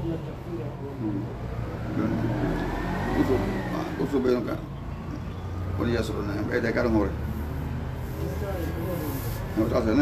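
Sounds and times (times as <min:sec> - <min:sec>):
vehicle engine revving: 0:01.4 - 0:06.3.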